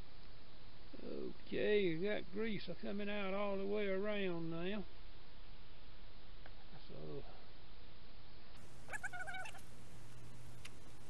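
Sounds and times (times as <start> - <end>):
steady low hum: 0.0 - 11.0
wavering animal call: 8.6 - 9.8.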